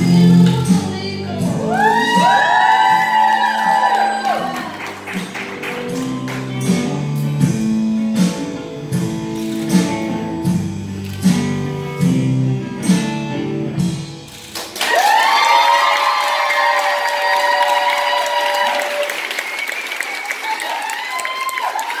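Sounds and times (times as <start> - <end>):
cheering and whoops: 1.5 - 4.9, 14.8 - 22.0
audience applause: 2.0 - 6.5, 14.5 - 22.0
guitar music with steady beat: 4.7 - 14.6.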